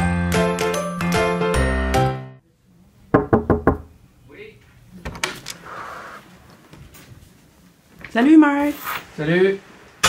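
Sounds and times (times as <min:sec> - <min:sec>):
knocking on wooden door: 0:03.2 - 0:03.9.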